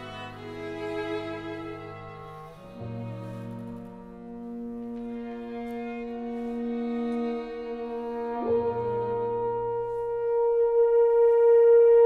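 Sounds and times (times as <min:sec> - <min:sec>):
low sustained ensemble note: 0:00.0 - 0:12.0.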